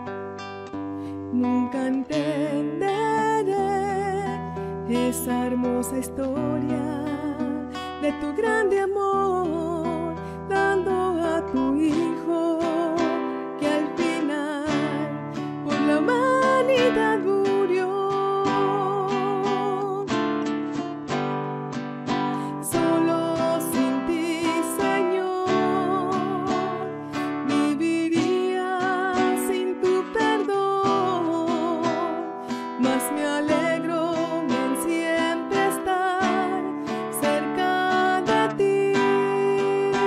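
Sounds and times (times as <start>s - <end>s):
strummed classical guitar: 0.0s - 40.0s
woman singing a hymn: 1.3s - 20.2s, 22.4s - 40.0s.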